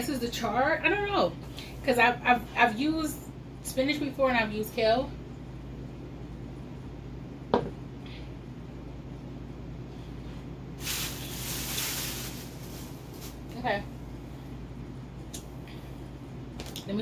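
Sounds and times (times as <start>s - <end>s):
steady low hum: 0.0s - 17.0s
soft hiss: 10.7s - 14.4s.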